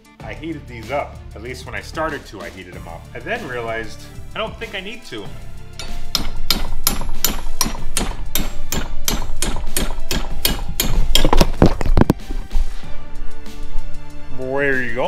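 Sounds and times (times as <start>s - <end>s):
hammer striking metal: 5.8s - 11.8s.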